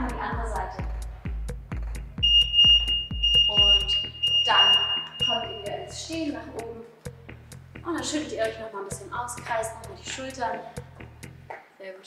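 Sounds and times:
background music with steady beat: 0.0 - 12.0
long electronic timer beep: 2.2 - 6.0.

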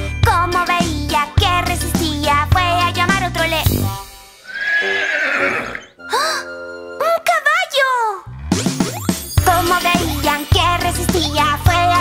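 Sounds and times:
children's song backing music: 0.0 - 4.3, 9.2 - 12.0
cartoon horse whinny: 4.5 - 5.9.

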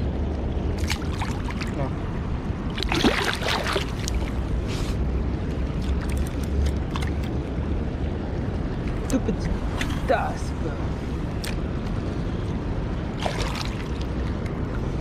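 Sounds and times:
river water splashing: 0.0 - 15.0.

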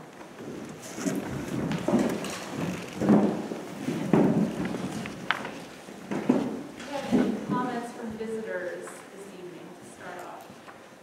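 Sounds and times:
chairs shifting and bumping: 0.4 - 7.8
rustling: 0.4 - 9.4.

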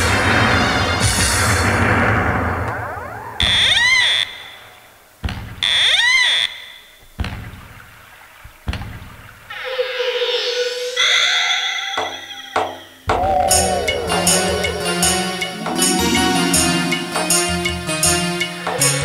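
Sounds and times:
rising electronic swoop: 1.6 - 4.8, 13.2 - 18.6
wavering alarm-like tones: 2.5 - 4.9, 10.8 - 18.6.

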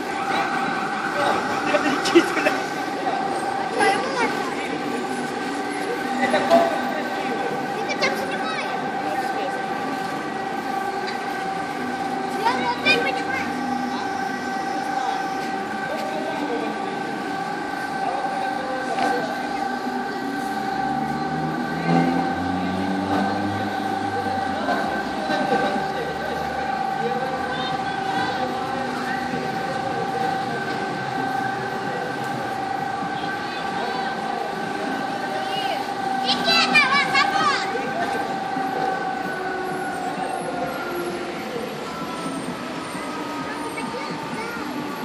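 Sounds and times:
crowd voices: 0.0 - 45.0.

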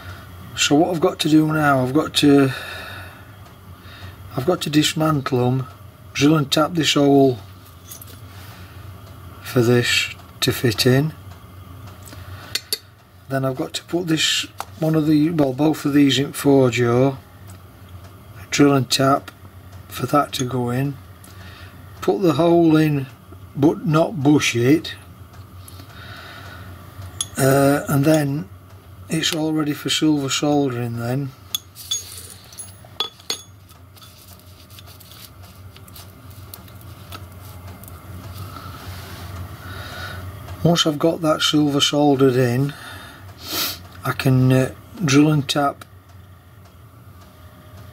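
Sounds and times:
light metallic clinks: 31.6 - 33.6.

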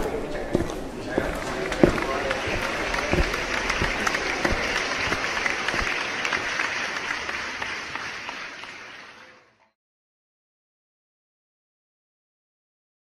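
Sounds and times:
audience applauding: 1.0 - 9.6.

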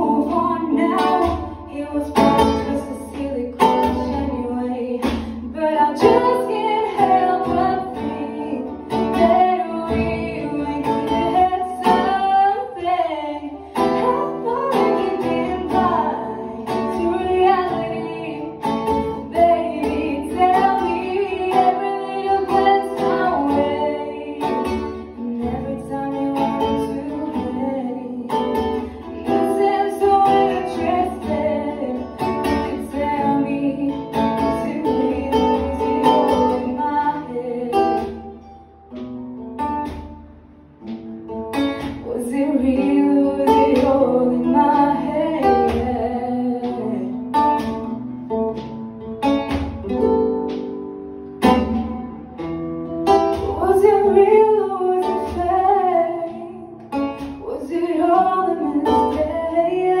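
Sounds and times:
woman singing into microphone: 0.0 - 38.5, 41.8 - 47.7, 53.3 - 60.0
acoustic guitar: 0.0 - 60.0.

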